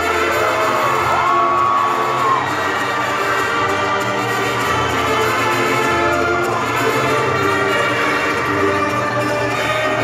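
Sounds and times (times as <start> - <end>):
crowd cheering: 0.0 - 10.0
mariachi band with drums and brass: 0.0 - 10.0
long high shout: 0.2 - 3.1.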